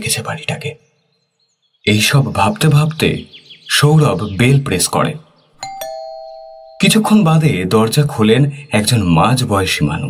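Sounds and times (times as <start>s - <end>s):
ding-dong doorbell chime: 5.6s - 7.3s.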